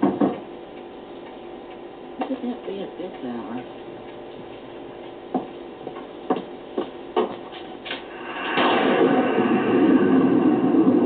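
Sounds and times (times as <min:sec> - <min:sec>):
clock ticking: 0:00.0 - 0:07.4.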